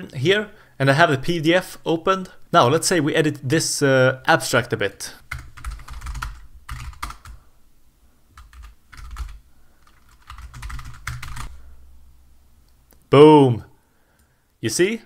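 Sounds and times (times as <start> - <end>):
steady low hum: 5.2 - 14.6
keyboard typing: 5.3 - 7.4, 8.4 - 11.6.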